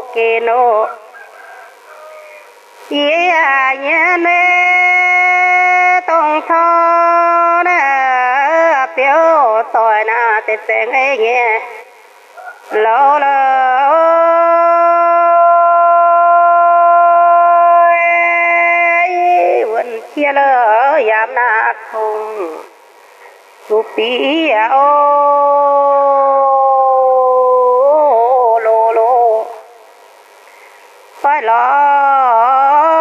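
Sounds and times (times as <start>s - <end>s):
person singing a long note: 0.0s - 22.8s, 23.7s - 29.8s, 31.2s - 33.0s
faint background hiss: 0.0s - 33.0s.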